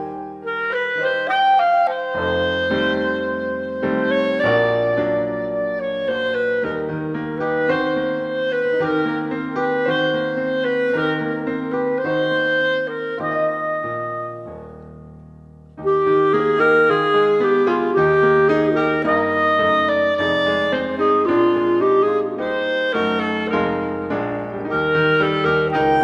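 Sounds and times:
clarinet melody: 0.0 - 26.0
piano chords: 0.0 - 26.0.

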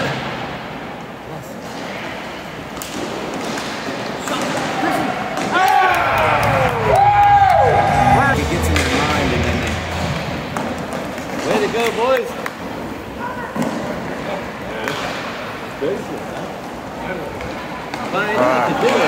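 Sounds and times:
long falling cry: 5.6 - 10.2.

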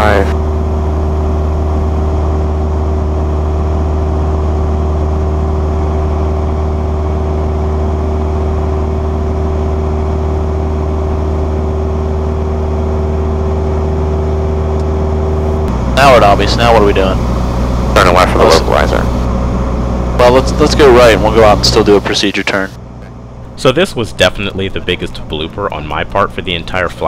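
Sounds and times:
light aircraft engine droning in cabin: 0.0 - 27.0.

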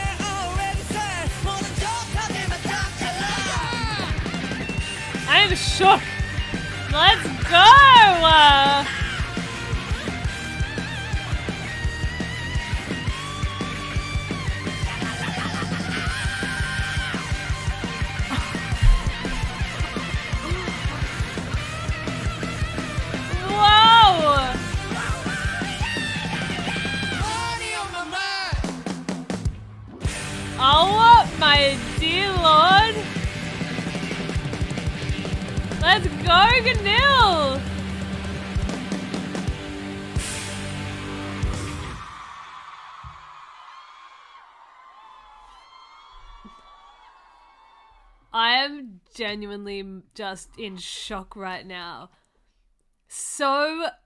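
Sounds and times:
live rock band music: 0.0 - 27.7, 30.0 - 42.0
concert audience cheering: 0.3 - 4.5, 40.6 - 48.3
high voice held cry: 3.2 - 4.2, 5.3 - 6.0, 7.0 - 9.0, 23.2 - 24.8, 30.6 - 33.1, 35.8 - 37.6
kick drum beating: 18.3 - 21.6.

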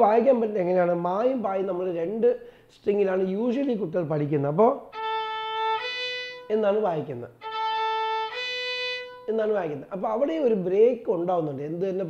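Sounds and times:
man's voice: 0.0 - 4.8, 6.5 - 7.4, 9.3 - 12.0
bowed violin notes: 4.8 - 10.0.

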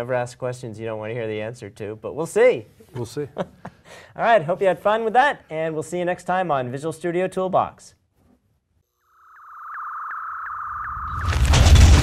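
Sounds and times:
steady electronic tone: 9.0 - 11.5.

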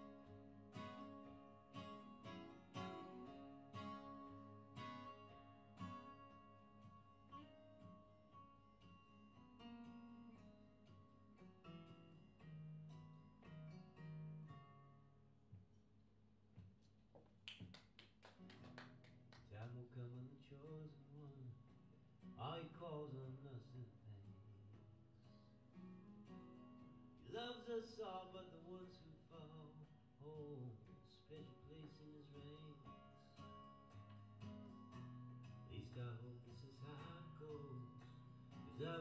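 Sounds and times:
acoustic guitars playing: 0.0 - 15.3, 18.4 - 39.0.

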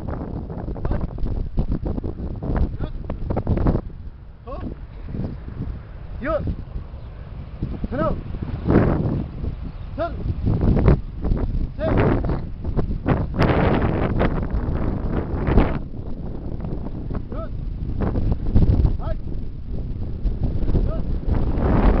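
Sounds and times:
wind buffeting microphone: 0.0 - 22.0
voices shouting calls: 9.2 - 12.5.

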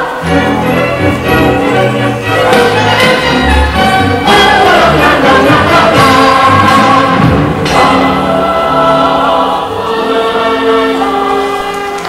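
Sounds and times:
group singing held notes: 0.0 - 1.2, 2.2 - 12.0
instrumental accompaniment: 0.0 - 12.0.

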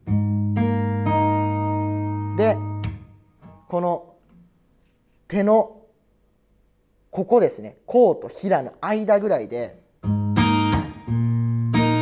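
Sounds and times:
guitar chord ringing: 0.0 - 3.7, 10.0 - 12.0.

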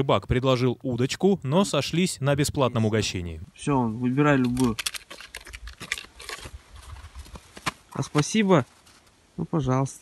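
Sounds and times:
animal rummaging in bucket: 4.4 - 7.7.

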